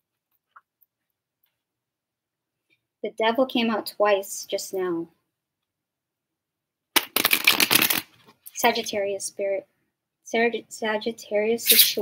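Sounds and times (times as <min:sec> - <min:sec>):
cards being shuffled: 0:07.0 - 0:08.8.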